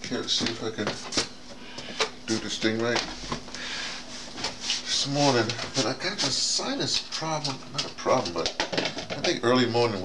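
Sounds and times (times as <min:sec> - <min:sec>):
rubbing and rustling: 0:03.0 - 0:07.9.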